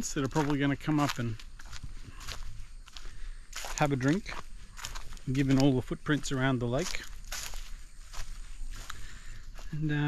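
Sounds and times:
footsteps crunching on dry leaves: 0.0s - 10.0s.

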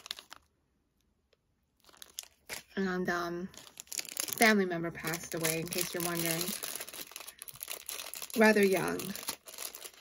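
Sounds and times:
plastic packaging crinkling: 0.0s - 2.8s, 3.4s - 10.0s.

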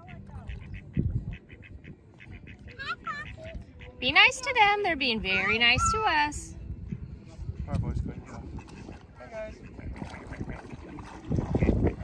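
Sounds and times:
duck quacking: 0.0s - 4.4s, 8.4s - 10.7s, 11.4s - 12.0s.

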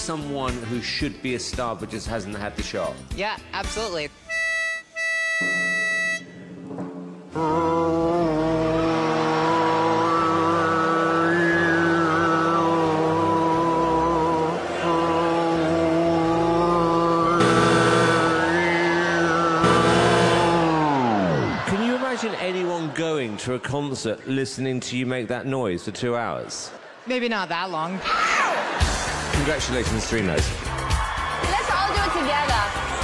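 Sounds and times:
audience cheering: 7.3s - 24.7s, 28.0s - 33.0s.

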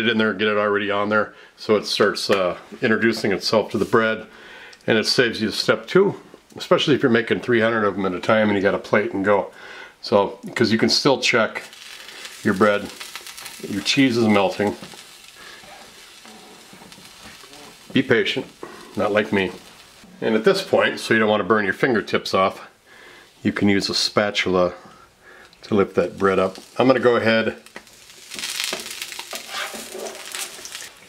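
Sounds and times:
bread sizzling in a griddle pan: 11.6s - 20.1s, 26.0s - 31.0s
spatula scraping and tapping pan: 16.6s - 18.0s, 27.8s - 30.8s.

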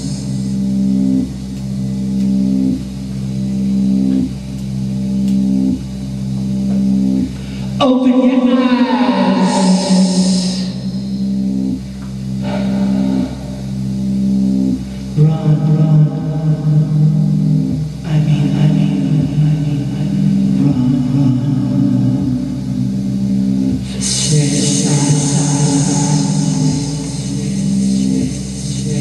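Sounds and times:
electronic keyboard droning chords: 0.0s - 29.0s.

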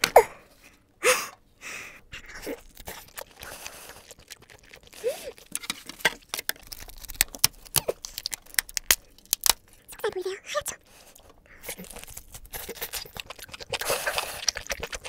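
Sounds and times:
wet chewing clicks and smacks: 2.2s - 9.7s, 11.1s - 15.0s.

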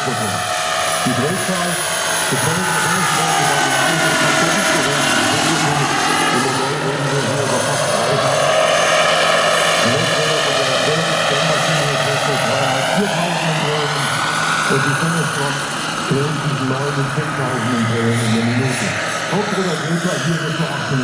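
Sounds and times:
model helicopter rotor and turbine whine: 0.0s - 21.0s.

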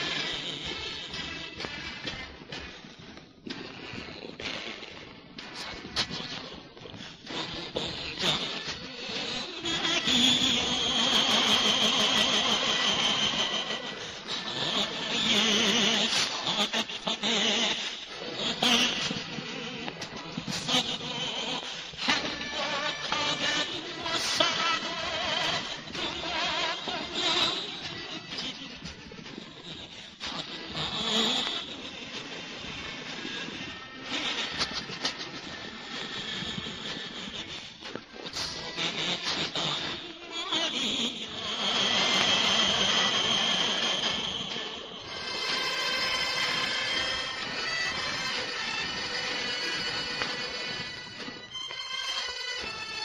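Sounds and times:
record surface hiss and crackle: 0.0s - 53.0s
old record song with vibrato melody: 44.9s - 53.0s.

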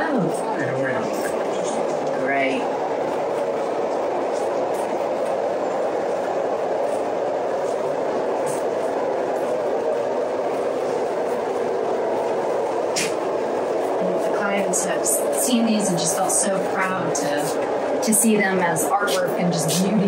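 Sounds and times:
steady rushing noise: 0.0s - 20.0s.

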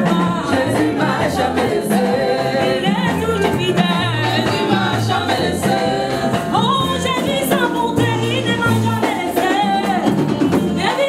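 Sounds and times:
conga drums: 0.0s - 11.0s
group of voices singing: 0.0s - 11.0s.

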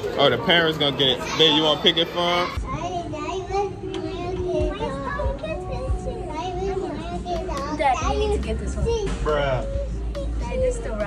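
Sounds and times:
children chattering: 0.0s - 9.2s.

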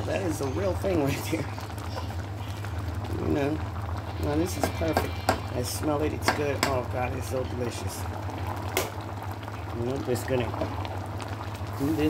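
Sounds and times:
broth bubbling in a pot: 0.0s - 12.0s.

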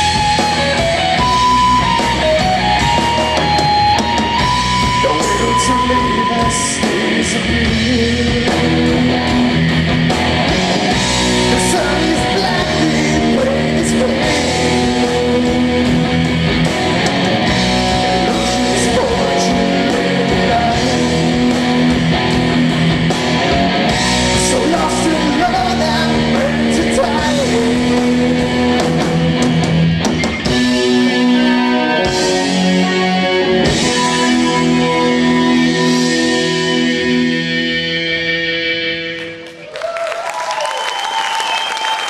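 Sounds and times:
rock band with distorted guitars: 0.0s - 39.8s.

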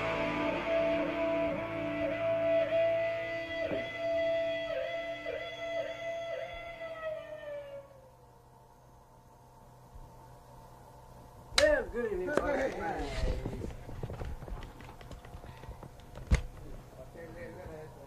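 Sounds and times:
electric guitar sustained note: 0.0s - 8.0s.

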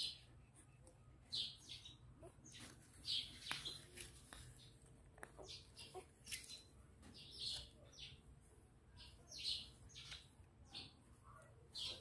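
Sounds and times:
puppy squeaking: 5.4s - 6.2s.

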